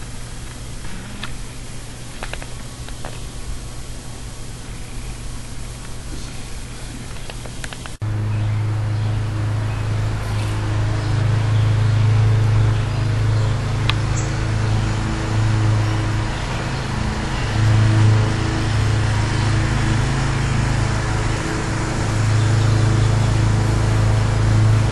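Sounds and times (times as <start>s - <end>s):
low machine hum: 0.0s - 24.9s
sharp click: 2.2s - 3.2s, 7.1s - 8.0s.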